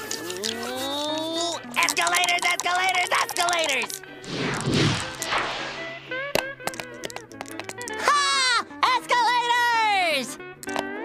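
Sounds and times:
dice clattering on board: 1.6s - 4.0s, 6.4s - 8.1s, 10.6s - 10.9s.

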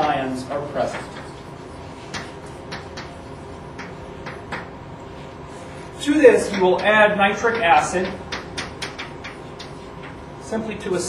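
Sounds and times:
low hum of room noise: 0.0s - 11.0s.

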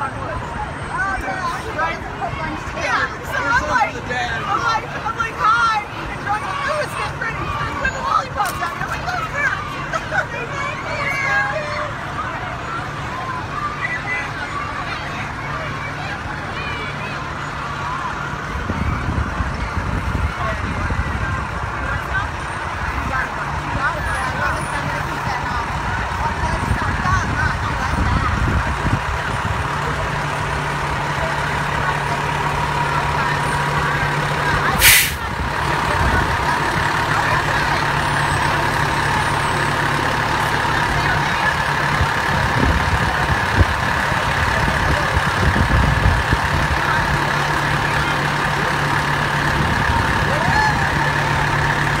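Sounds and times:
diesel engine running: 0.0s - 52.0s
air brakes hissing: 34.8s - 35.3s.

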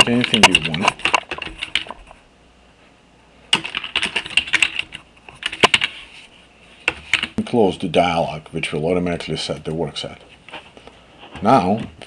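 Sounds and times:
computer keyboard typing: 0.0s - 2.1s, 3.5s - 6.0s, 6.9s - 7.4s.

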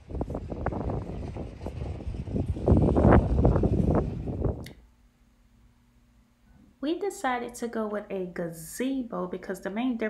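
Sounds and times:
wind buffeting microphone: 0.0s - 4.8s.

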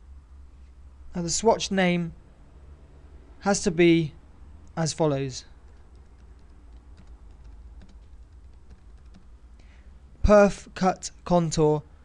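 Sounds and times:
low steady hum: 0.0s - 12.0s
computer keyboard typing: 5.5s - 9.4s.

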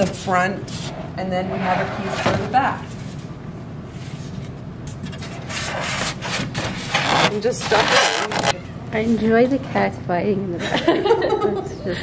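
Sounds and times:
styrofoam scraping styrofoam: 5.3s - 8.6s.

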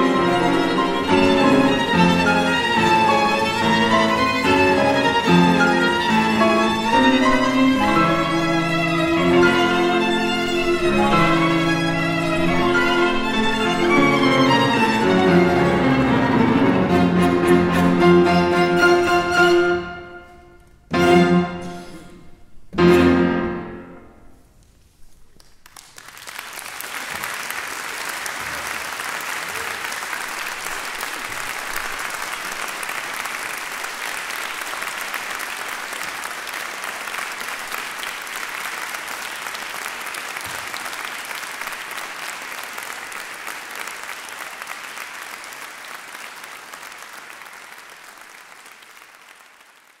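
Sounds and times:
audience applauding: 0.0s - 17.2s, 25.4s - 50.0s.

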